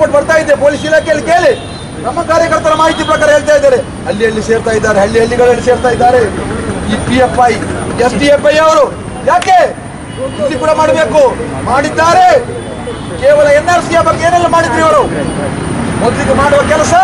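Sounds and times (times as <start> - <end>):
man giving loud speech: 0.0 - 15.4, 16.0 - 17.0
street traffic noise: 0.0 - 17.0.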